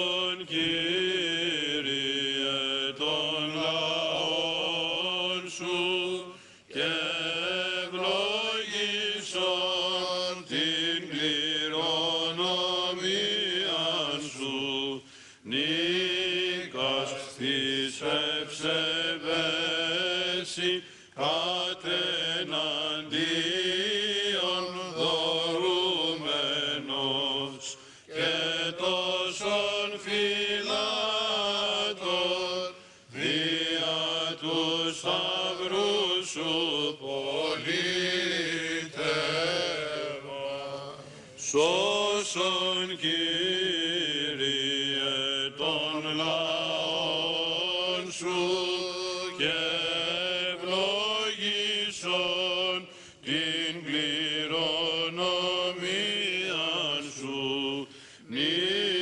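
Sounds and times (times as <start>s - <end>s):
men singing chant: 0.0s - 59.0s.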